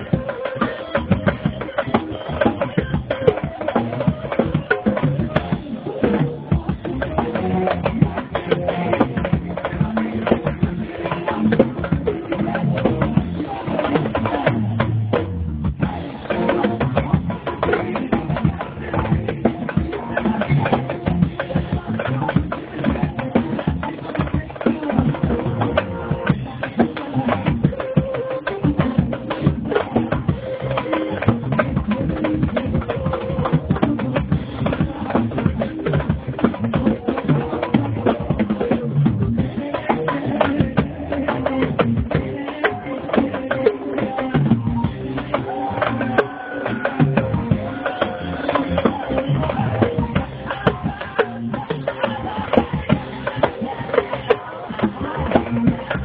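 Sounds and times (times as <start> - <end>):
drum kit playing fast: 0.0 - 56.0.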